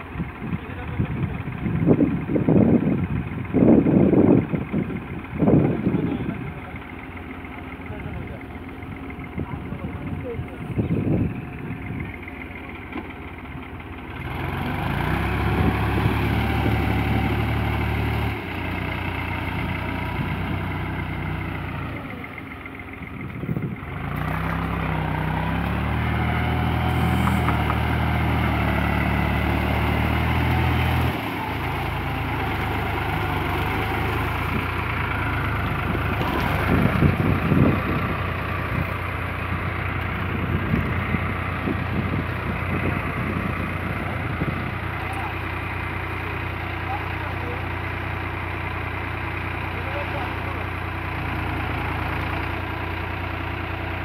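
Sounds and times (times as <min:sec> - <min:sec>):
tractor diesel engines revving: 0:00.0 - 0:54.0.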